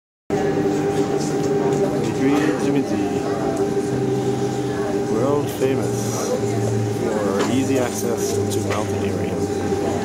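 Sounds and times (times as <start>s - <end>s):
cable car machinery humming: 0.3s - 10.0s.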